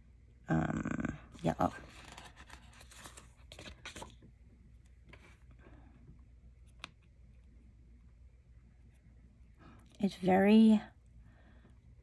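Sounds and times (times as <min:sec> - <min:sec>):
paper rustling and crackling: 0:01.6 - 0:04.3.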